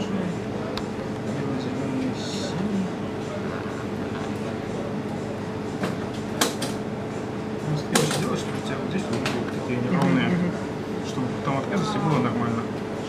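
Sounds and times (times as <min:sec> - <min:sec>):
murmur of voices: 0:00.0 - 0:13.0
steady hum: 0:00.0 - 0:13.0.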